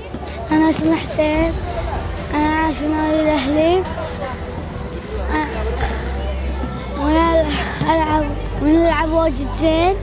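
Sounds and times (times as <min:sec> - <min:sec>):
boy's high voice: 0:02.3 - 0:03.9, 0:07.0 - 0:10.0.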